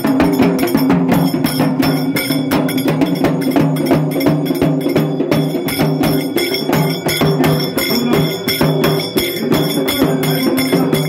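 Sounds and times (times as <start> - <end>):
clanging metal percussion: 0.0 - 11.0
dhol drum beating: 0.0 - 11.0.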